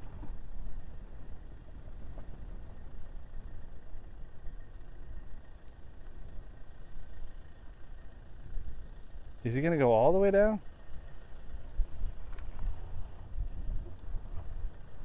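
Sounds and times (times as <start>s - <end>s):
distant van engine rumbling: 0.0s - 15.0s.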